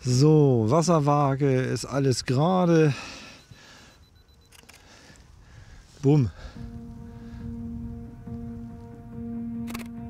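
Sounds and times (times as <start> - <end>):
camera shutter clicking: 4.5 - 4.9, 9.6 - 10.0.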